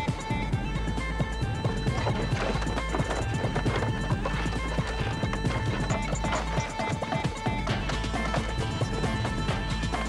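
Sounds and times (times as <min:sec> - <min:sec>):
background music with held tones: 0:00.0 - 0:10.0
clatter of quick knocks: 0:01.6 - 0:10.0.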